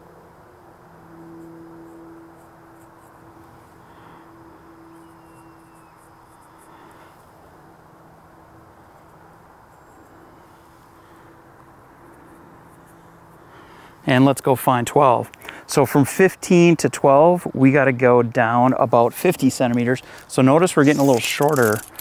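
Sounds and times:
faint steady hum: 0:00.0 - 0:22.0
high insect chirps: 0:01.4 - 0:07.2, 0:20.7 - 0:22.0.

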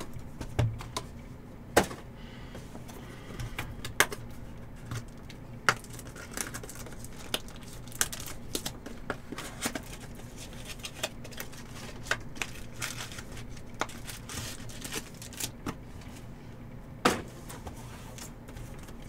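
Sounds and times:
paperboard clicks and crinkles: 0:04.8 - 0:15.6.

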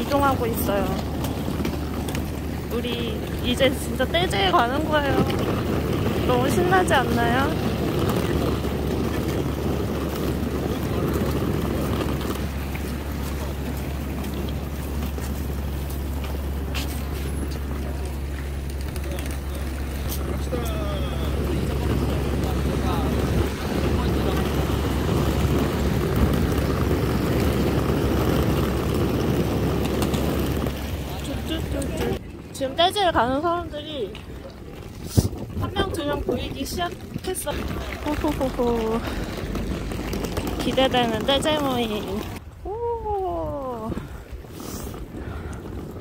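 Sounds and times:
street traffic rumble: 0:00.0 - 0:46.0
wind on microphone: 0:00.0 - 0:46.0
faint voices: 0:09.4 - 0:27.5.

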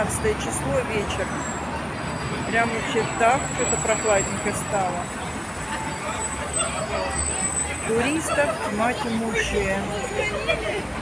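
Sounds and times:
babble of passers-by talking: 0:00.0 - 0:11.0
traffic rumbling by: 0:00.0 - 0:11.0.

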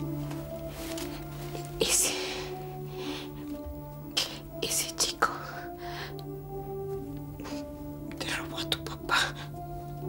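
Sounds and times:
soft background music: 0:00.0 - 0:10.0
person whispering breathily: 0:01.8 - 0:03.4, 0:07.4 - 0:09.6.

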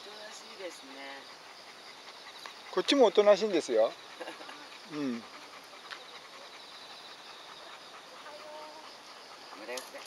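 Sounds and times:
insects trilling: 0:00.0 - 0:10.0.

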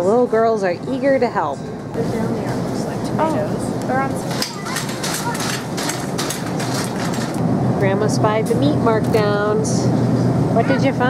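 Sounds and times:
steady hum: 0:00.0 - 0:11.0
indistinct voices: 0:01.3 - 0:09.9
scuffs and rattles: 0:04.2 - 0:07.4.

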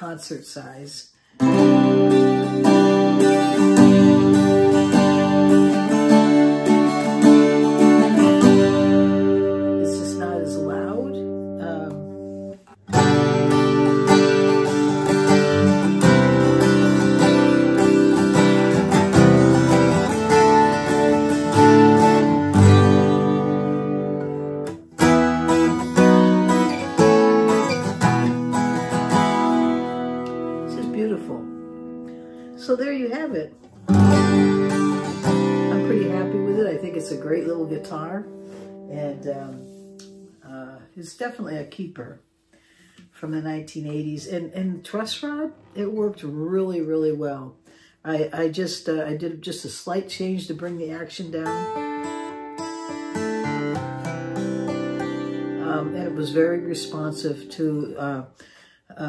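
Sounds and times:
twelve-string acoustic guitar strumming: 0:01.4 - 0:40.5, 0:50.7 - 0:58.2.

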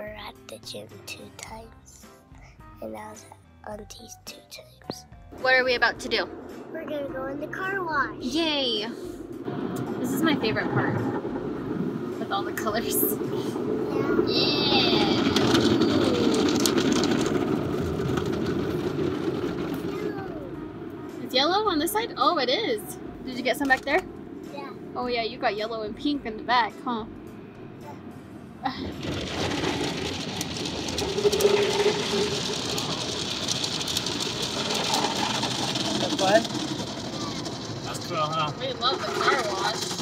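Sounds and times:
muffled rush of spraying water: 0:05.5 - 0:27.0, 0:28.7 - 0:40.0.

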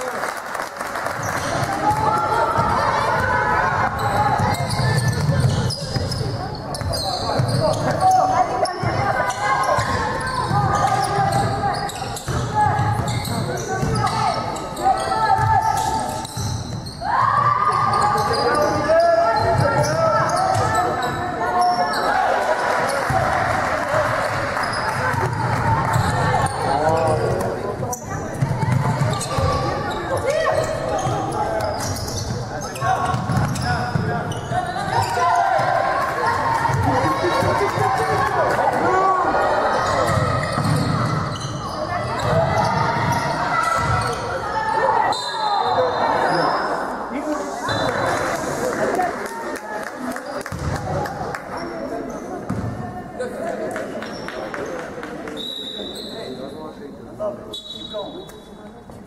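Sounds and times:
players calling out: 0:01.2 - 0:49.2.

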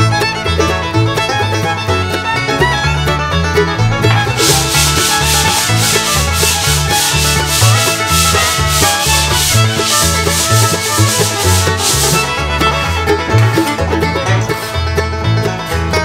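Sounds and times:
background music with bass line: 0:00.0 - 0:16.0
hand sanding plaster: 0:04.1 - 0:12.5.

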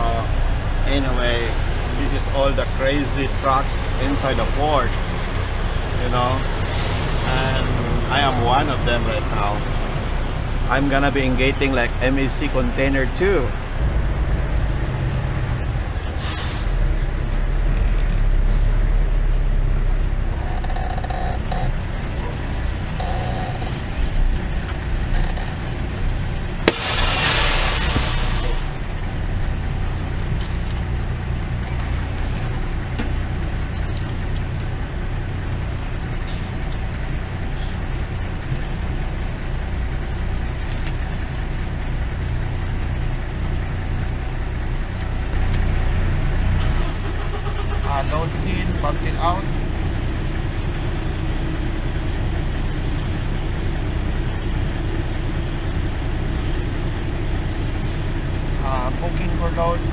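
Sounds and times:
diesel engine rumble: 0:00.0 - 0:59.9
air brakes hissing: 0:06.6 - 0:07.3, 0:16.0 - 0:17.4, 0:26.6 - 0:28.8, 0:56.4 - 0:58.0.

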